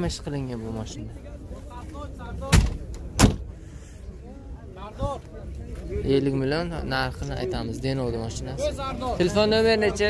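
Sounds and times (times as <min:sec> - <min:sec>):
faint background voices: 0:00.0 - 0:10.0
car door shutting: 0:02.5 - 0:03.5.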